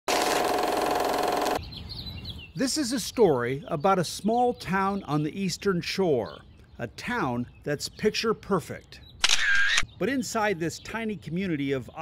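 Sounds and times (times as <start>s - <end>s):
film projector clatter: 0.1s - 1.6s
faint birdsong: 1.6s - 12.0s.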